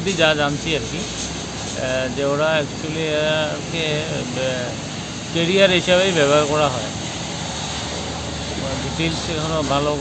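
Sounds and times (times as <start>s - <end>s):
man speaking: 0.0s - 1.1s, 1.7s - 7.0s, 8.5s - 10.0s
traffic rumbling: 0.0s - 10.0s.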